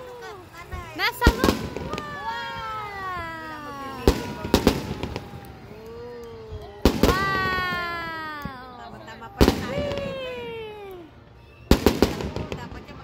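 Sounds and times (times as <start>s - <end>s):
fireworks bangs: 0.0s - 10.8s, 11.6s - 13.0s
falling whistle-like tones: 1.8s - 8.7s, 9.8s - 12.2s.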